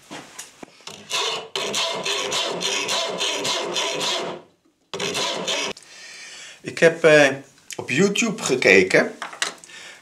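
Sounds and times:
file rasping on wood: 0.9 - 4.4, 5.0 - 5.8.

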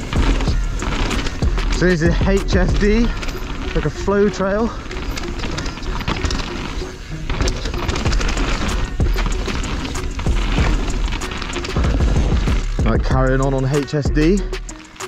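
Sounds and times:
bike rattling and knocking: 0.0 - 15.0
tyres rushing on loose dirt: 0.0 - 15.0.

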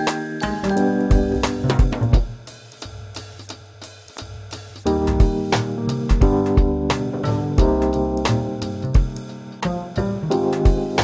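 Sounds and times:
melody instruments: 0.0 - 2.4, 4.9 - 11.0
drums and bass: 0.0 - 11.0.

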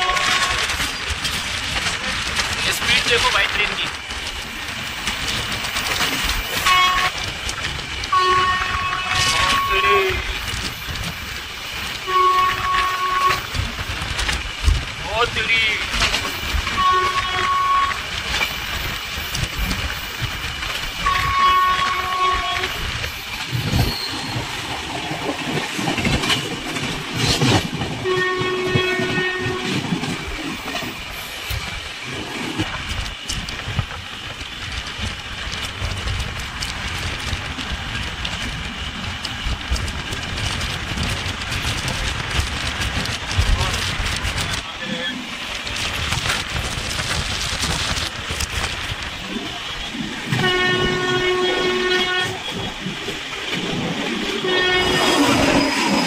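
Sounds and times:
train horn blasts: 0.0 - 0.8, 6.6 - 7.2, 8.1 - 10.2, 12.0 - 13.6, 16.7 - 18.0, 21.0 - 22.8, 28.0 - 29.8, 50.3 - 52.6, 54.3 - 55.4
train rumble and wheel clatter: 0.0 - 56.0.

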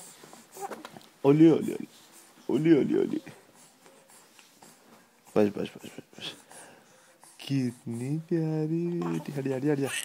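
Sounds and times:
adult baby talk: 8.8 - 10.0.

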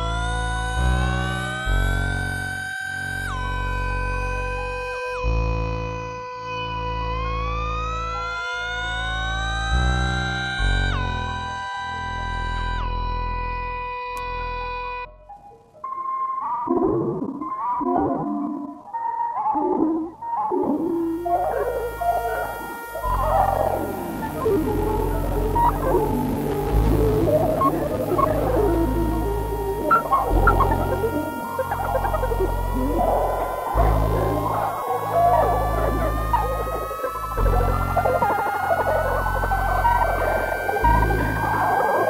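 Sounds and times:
warbling electronic tones: 20.1 - 42.0
faint high held tones: 20.6 - 42.0
low steady drone: 20.6 - 42.0.

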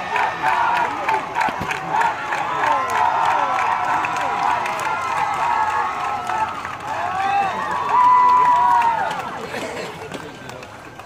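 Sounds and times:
spectators shouting encouragement: 0.0 - 9.4.

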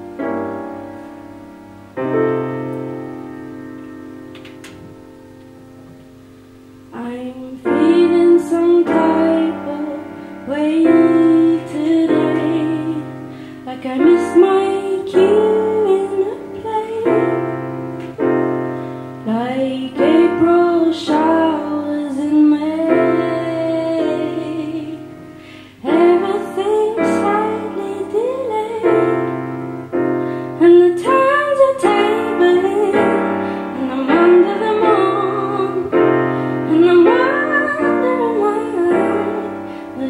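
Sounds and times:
grand piano accompaniment: 0.0 - 40.0
woman singing: 6.9 - 18.4, 19.2 - 40.0.

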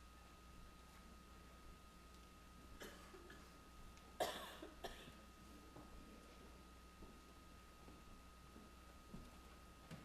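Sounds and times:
person coughing: 2.8 - 3.6, 4.2 - 5.2.

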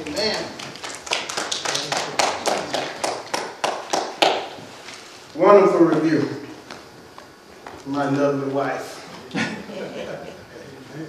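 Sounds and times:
people clapping: 0.0 - 4.7.

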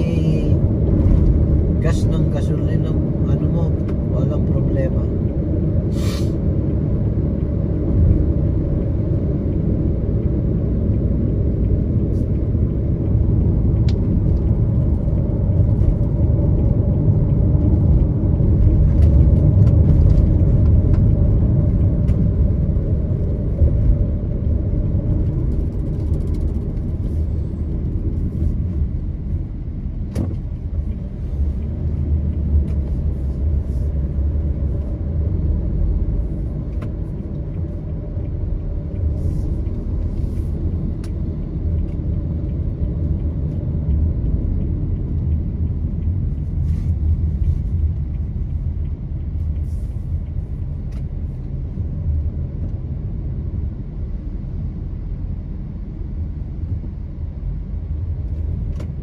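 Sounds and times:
road rumble inside car: 0.0 - 59.0.

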